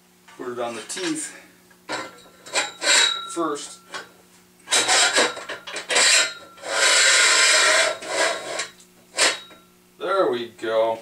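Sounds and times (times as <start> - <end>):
metal scraping on steel column: 1.9 - 4.1, 4.7 - 9.6.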